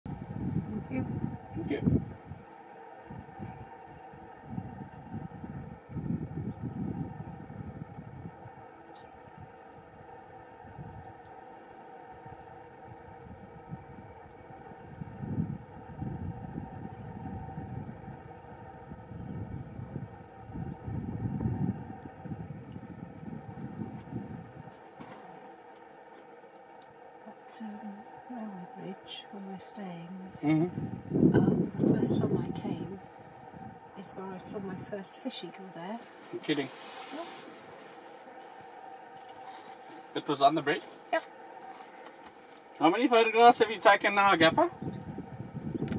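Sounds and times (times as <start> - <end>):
low rumbling: 0.0 - 45.9
faint steady hum: 0.1 - 45.9
vehicle engine idling: 0.1 - 45.9
soft hiss: 34.5 - 44.0.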